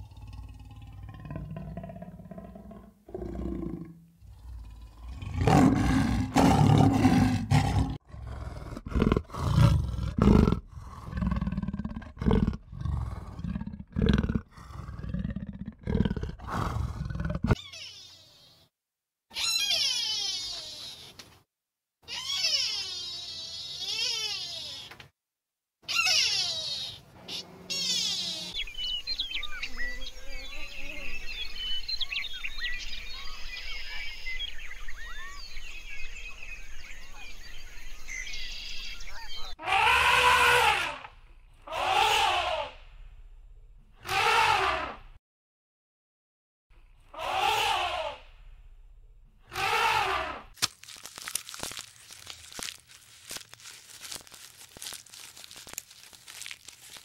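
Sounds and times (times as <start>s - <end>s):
jaguar growling and roaring: 0.0s - 17.6s.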